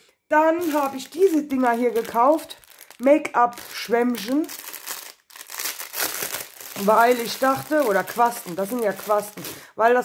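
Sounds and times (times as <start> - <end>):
plastic bag crinkling: 0.5 - 9.7.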